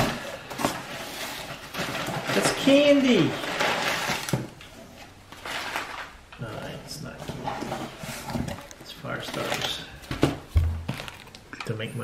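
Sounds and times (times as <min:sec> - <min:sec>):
paper and cardboard rustling: 0:00.0 - 0:11.4.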